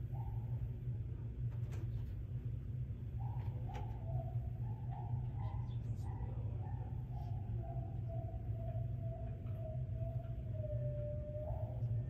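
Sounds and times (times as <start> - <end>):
steady low hum: 0.0 - 12.0
bird calling: 3.2 - 12.0.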